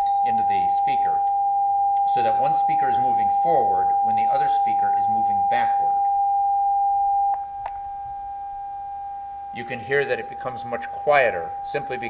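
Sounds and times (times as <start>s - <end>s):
steady test tone: 0.0s - 12.0s.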